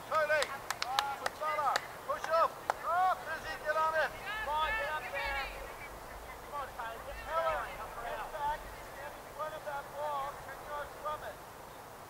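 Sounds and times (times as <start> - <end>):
high voices shouting calls: 1.4 - 11.4.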